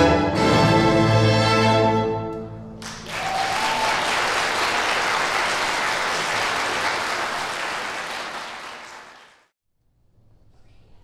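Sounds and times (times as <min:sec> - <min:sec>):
audience applauding: 0:02.8 - 0:09.5.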